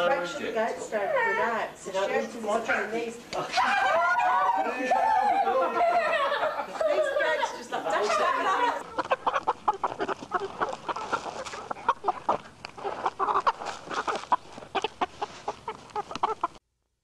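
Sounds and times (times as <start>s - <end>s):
hens clucking: 0.0s - 16.6s
hens pecking at a sneaker: 8.0s - 16.6s.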